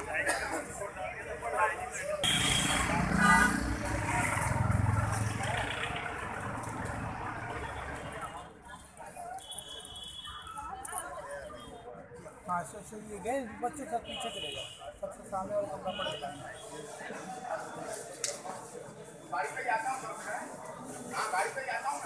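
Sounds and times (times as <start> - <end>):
people talking: 0.0 - 22.0
road traffic: 0.0 - 22.0
vehicle passing rumble: 2.8 - 8.2.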